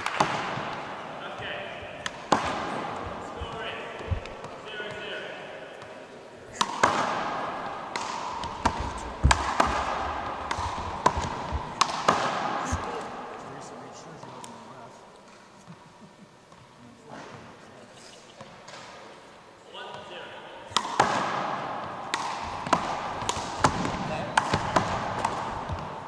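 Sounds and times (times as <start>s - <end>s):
handball hits echoing in gym: 0.0s - 14.6s, 19.8s - 26.0s.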